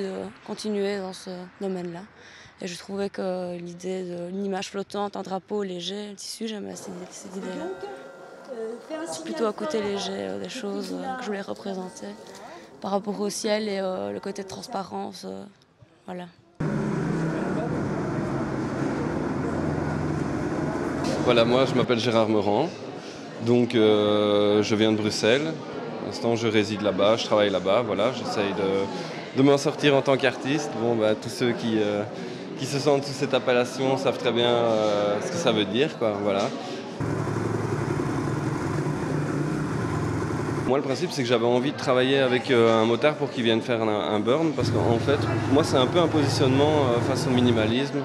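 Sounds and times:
crowd babble: 5.3s - 15.5s, 16.1s - 48.0s
motorcycle engine running steadily: 37.0s - 40.7s, 44.6s - 47.7s
steady low hum: 37.0s - 40.7s.

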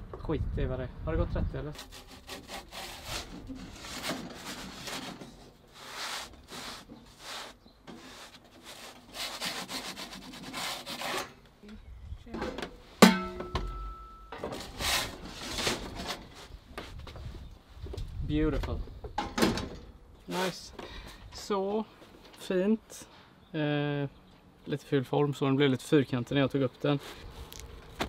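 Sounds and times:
wooden peel scraping on baking stone: 1.8s - 11.3s.

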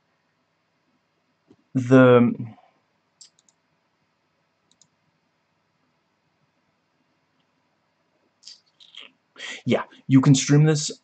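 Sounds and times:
faint short clicks: 3.2s - 3.6s, 4.7s - 4.9s.

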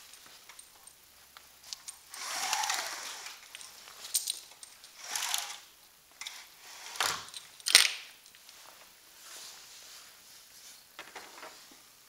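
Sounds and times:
window blind slats rattling: 2.0s - 8.1s.

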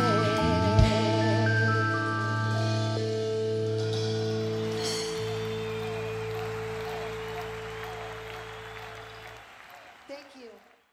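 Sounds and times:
rock band held chord: 0.0s - 9.8s
audience applause: 4.2s - 10.9s.

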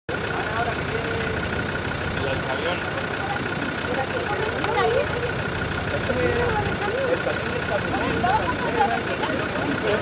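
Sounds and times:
faint voices: 0.1s - 10.0s
vehicle engine running: 0.1s - 10.0s.

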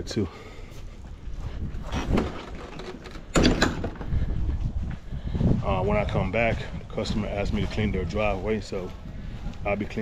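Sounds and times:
gate and latch rattling clatter: 1.9s - 4.2s.

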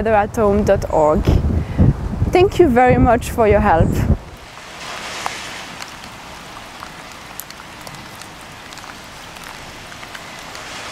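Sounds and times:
small drips: 4.4s - 10.9s
water hissing: 4.4s - 10.9s.

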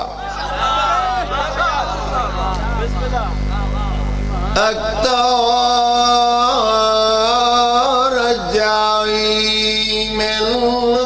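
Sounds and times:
low hum: 0.0s - 10.0s
man chanting over loudspeaker: 0.0s - 11.0s.

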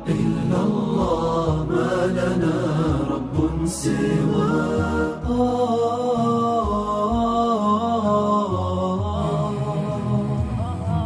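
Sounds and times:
devotional chant singing: 0.0s - 11.0s.

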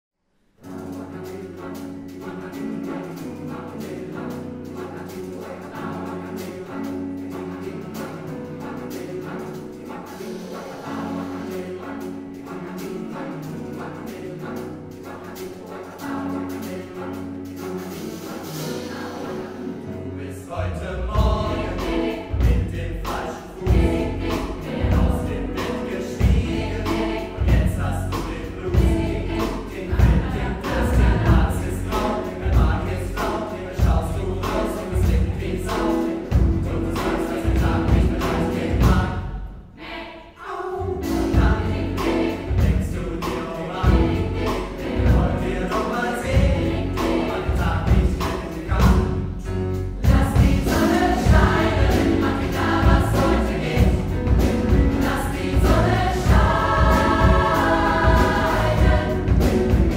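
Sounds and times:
piano: 0.4s - 59.9s
choir singing pop song: 0.6s - 59.9s
bass: 19.8s - 39.7s, 40.9s - 59.9s
drum kit steady beat: 21.2s - 39.4s, 41.0s - 59.9s.

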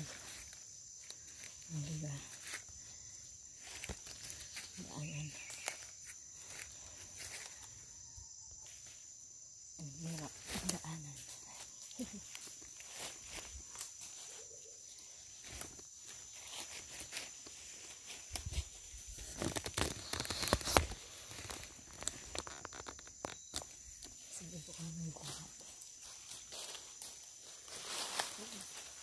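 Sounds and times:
footsteps crunching on dry leaves: 0.0s - 2.8s, 12.4s - 14.6s, 15.3s - 23.5s, 24.7s - 29.0s
high-pitched insect buzz: 0.0s - 29.0s.

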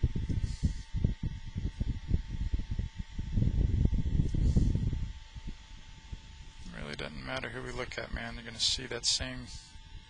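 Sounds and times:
low rumbling and crackling: 0.0s - 10.0s.

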